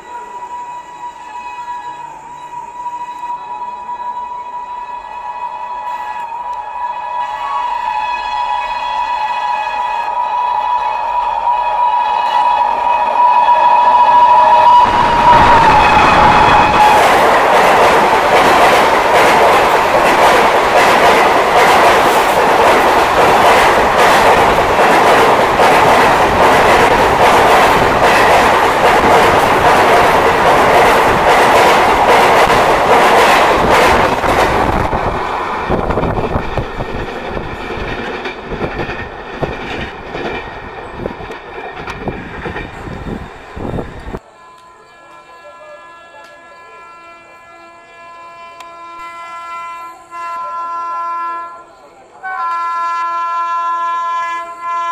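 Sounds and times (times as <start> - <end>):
locomotive horn: 0.0 - 17.6, 44.2 - 54.9
train wheels clattering over rail joints: 35.8 - 44.2.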